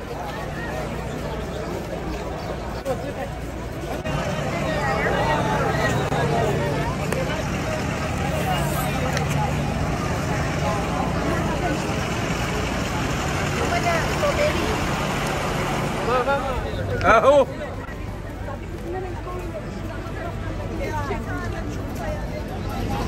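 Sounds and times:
people chattering: 0.0s - 23.0s
vehicle engine humming: 0.0s - 23.0s.

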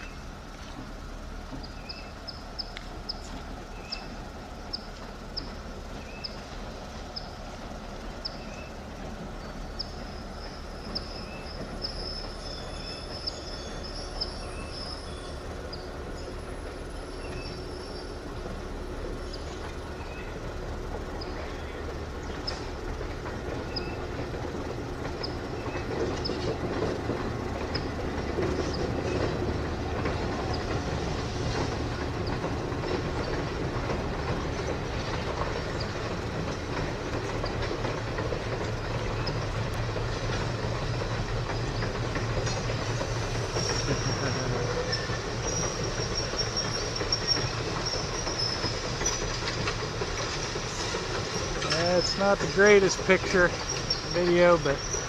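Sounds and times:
train wheels rumbling on rails: 0.0s - 55.0s.

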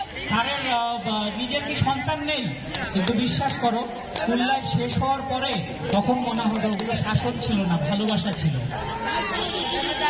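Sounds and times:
man speaking over public address: 0.0s - 8.9s
people chattering: 0.0s - 10.0s.

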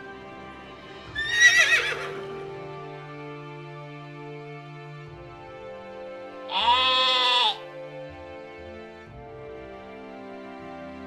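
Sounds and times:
background music: 0.0s - 11.0s
llama bleating: 6.5s - 7.6s.

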